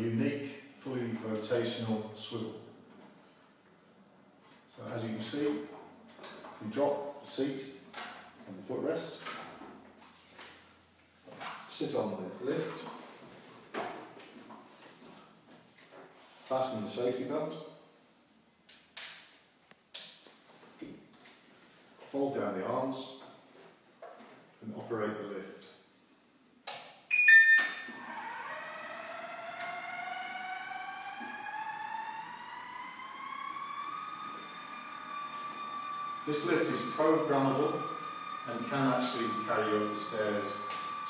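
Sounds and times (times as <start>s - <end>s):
short tone: 27.1s - 27.9s
stairlift motor whine: 27.8s - 41.0s.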